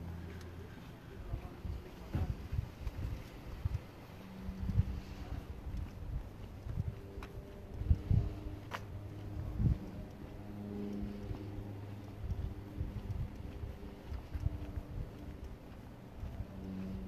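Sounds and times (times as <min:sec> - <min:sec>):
low engine hum: 0:00.0 - 0:17.0.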